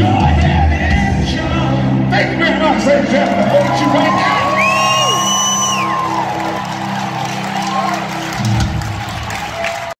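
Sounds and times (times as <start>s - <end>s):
live rock band music: 0.0s - 9.9s
crowd whistles and whoops: 3.3s - 9.9s.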